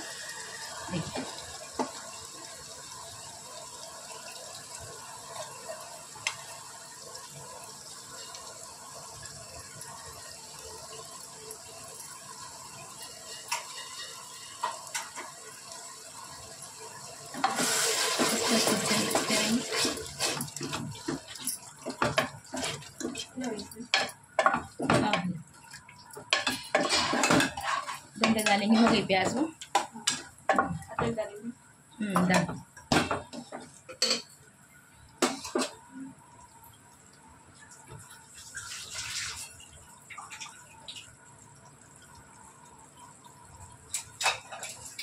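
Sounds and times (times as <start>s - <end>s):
wooden spoon scraping pot: 26.7s - 28.4s.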